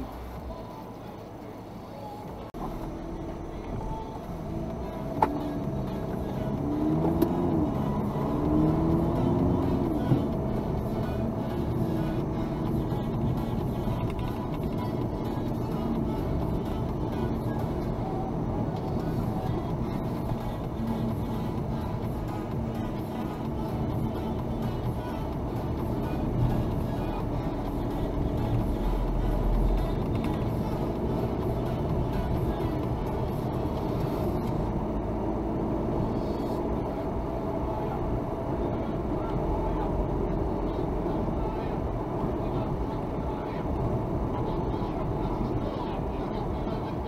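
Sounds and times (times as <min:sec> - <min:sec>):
car engine and tyre noise: 0:00.0 - 0:47.0.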